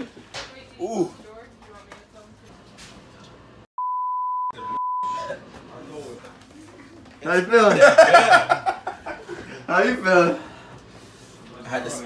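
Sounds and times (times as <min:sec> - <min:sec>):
high-pitched censor bleep: 0:03.8 - 0:05.3.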